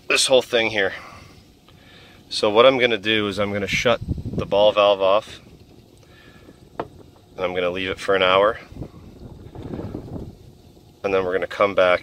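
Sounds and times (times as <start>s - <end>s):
wind buffeting microphone: 3.2s - 11.0s.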